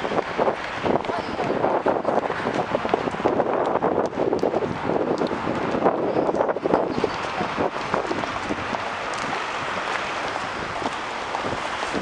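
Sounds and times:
busy city street noise: 0:00.0 - 0:12.0
wind buffeting microphone: 0:00.0 - 0:12.0.

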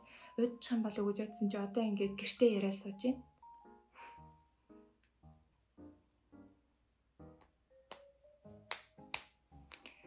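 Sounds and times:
soft keyboard music: 0:00.0 - 0:10.0.

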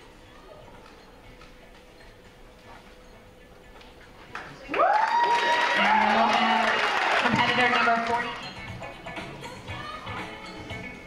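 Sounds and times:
music: 0:00.0 - 0:04.5, 0:05.8 - 0:11.0
applause: 0:04.4 - 0:08.4
audience cheering and whooping: 0:04.7 - 0:07.3.

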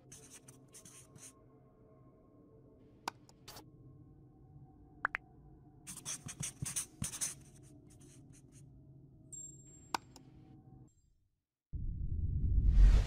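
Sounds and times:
marker scribbling: 0:00.0 - 0:01.3, 0:05.9 - 0:08.6.

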